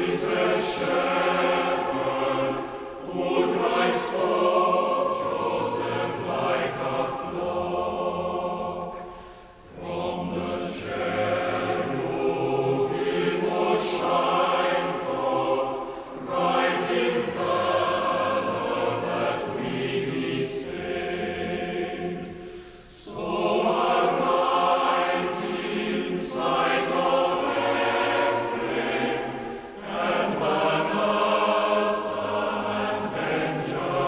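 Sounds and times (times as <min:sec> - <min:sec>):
choir singing: 0:00.0 - 0:34.0.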